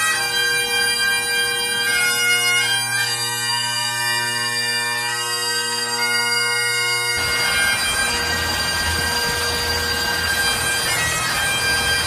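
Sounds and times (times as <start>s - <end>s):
bagpipe music with drones: 0.0s - 12.0s.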